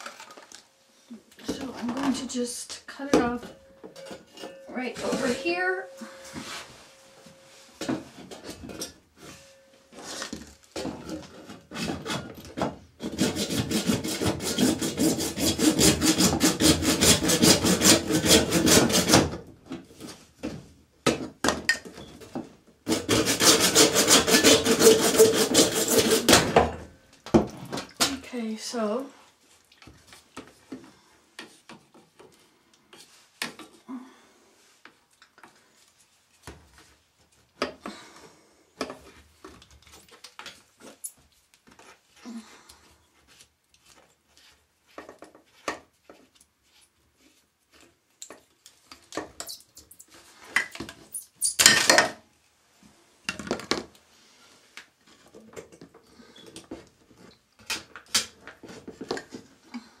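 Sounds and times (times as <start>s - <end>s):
plastic pipes knocking and scraping: 55.1s - 59.9s.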